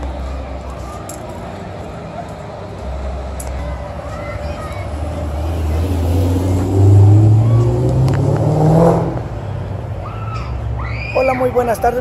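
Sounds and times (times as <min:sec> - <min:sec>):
vehicle engine accelerating: 0:04.3 - 0:09.9.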